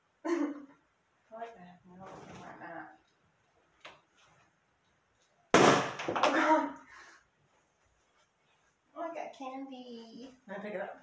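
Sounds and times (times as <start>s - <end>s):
balloon popping: 5.5s - 6.4s.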